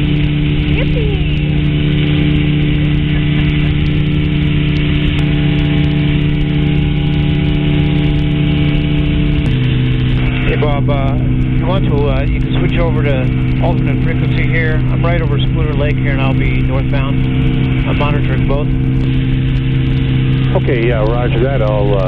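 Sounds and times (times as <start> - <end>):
engine and propeller droning: 0.0 - 22.0.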